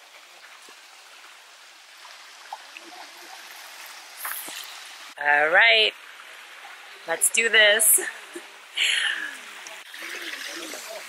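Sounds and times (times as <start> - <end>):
stream trickling over stones: 0.0 - 11.0.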